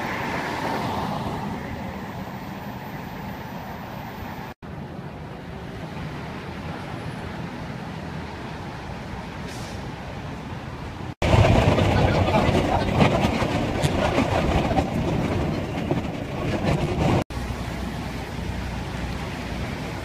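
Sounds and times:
train rumbling over bridge: 0.0s - 3.8s, 4.8s - 20.0s
city traffic noise: 0.0s - 20.0s
train wheels clicking on rails: 11.2s - 17.2s.

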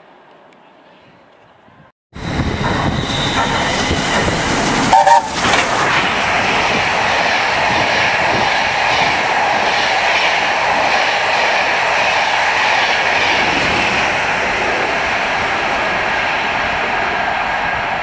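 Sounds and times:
train carriages rushing on rails: 2.2s - 18.0s.

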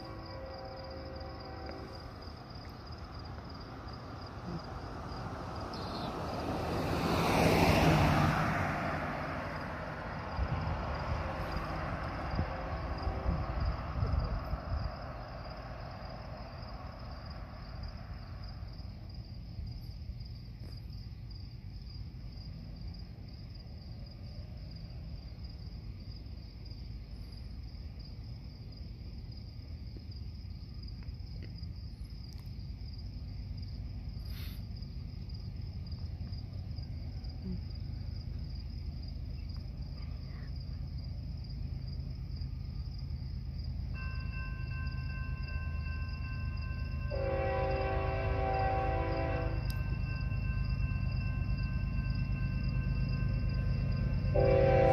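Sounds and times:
diesel locomotive rumble: 0.0s - 19.4s, 32.6s - 54.9s
crickets chirping: 0.0s - 54.9s.

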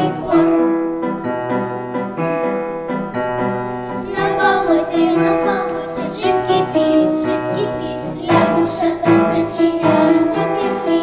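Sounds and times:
children's choir singing: 0.0s - 1.1s, 3.9s - 11.0s
piano accompaniment: 0.0s - 11.0s.

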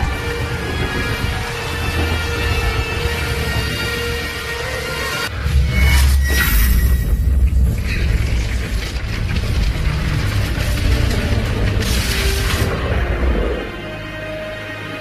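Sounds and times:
deep heavy rumble: 0.0s - 5.6s, 6.7s - 14.2s
film score music: 0.0s - 15.0s.

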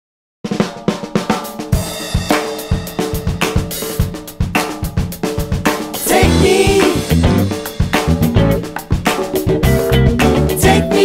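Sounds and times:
drum kit groove: 0.4s - 11.0s
soul funk recording: 1.7s - 11.0s.

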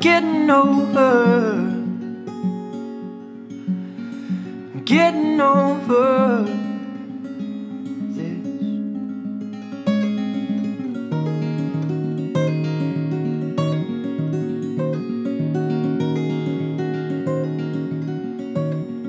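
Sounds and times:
acoustic guitar plucking: 0.0s - 19.0s.

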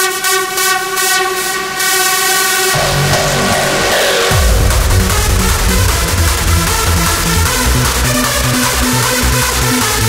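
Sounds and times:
hardstyle dance music: 0.0s - 10.0s.

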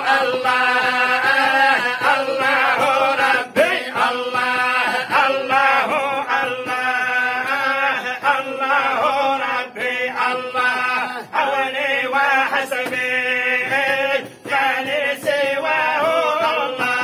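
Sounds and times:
men chanting in long notes: 0.0s - 17.0s.

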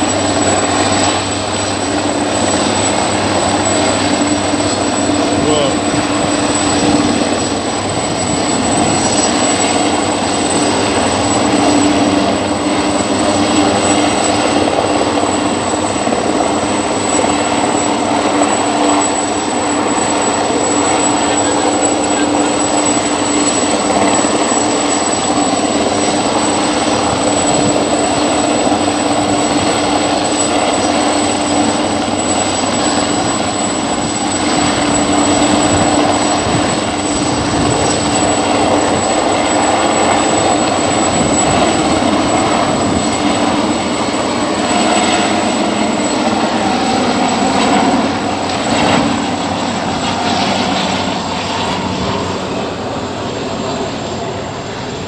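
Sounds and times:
helicopter hovering: 0.0s - 55.0s.

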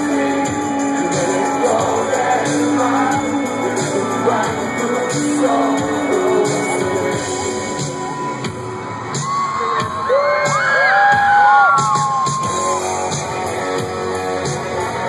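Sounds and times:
rock band playing live: 0.0s - 15.0s.

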